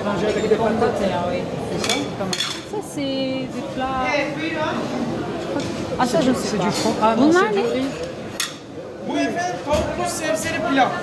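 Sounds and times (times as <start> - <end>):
restaurant chatter: 0.0 - 11.0
tableware clink: 1.8 - 2.7, 7.8 - 8.7.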